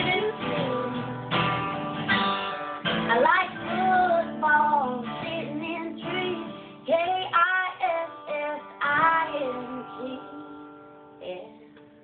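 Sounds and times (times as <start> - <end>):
woman singing: 0.0 - 1.6, 2.9 - 11.9
strummed acoustic guitar: 0.0 - 12.0.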